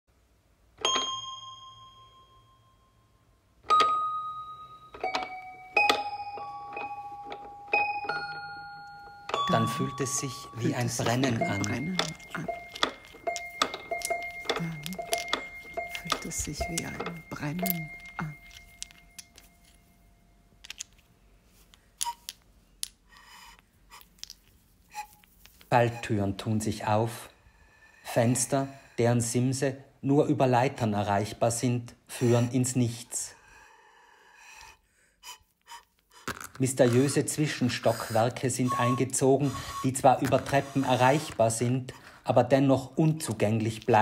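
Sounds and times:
bell-like chime tones: 0.8s - 3.2s, 3.8s - 20.4s.

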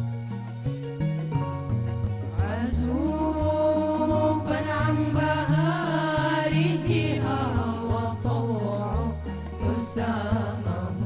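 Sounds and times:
male vocal group singing: 2.4s - 11.0s.

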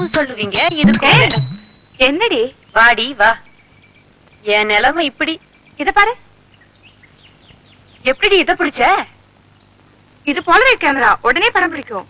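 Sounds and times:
faint bird chirps: 0.0s - 8.6s, 9.5s - 10.9s.

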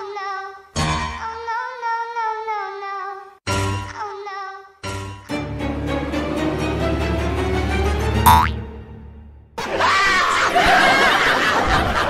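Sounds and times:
background music: 4.9s - 9.5s
cartoon boing sound effect: 8.3s - 8.6s
burst of laughter: 9.7s - 12.0s.

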